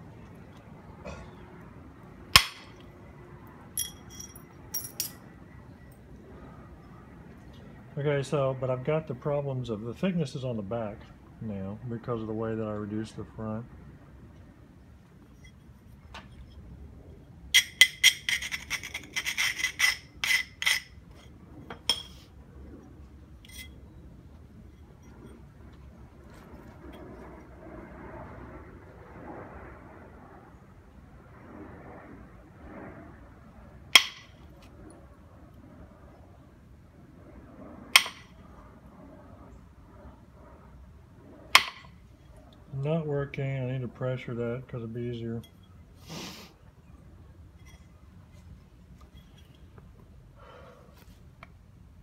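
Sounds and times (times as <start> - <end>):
antler striking stone: 2.4 - 2.8, 34.0 - 34.4, 38.0 - 38.3, 41.6 - 41.9.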